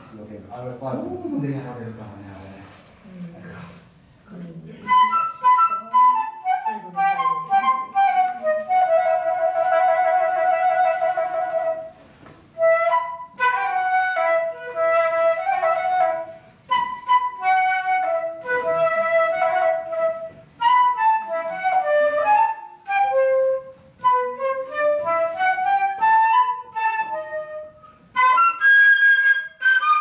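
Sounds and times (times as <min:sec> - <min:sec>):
flute playing slow melody: 0:04.8 - 0:30.0.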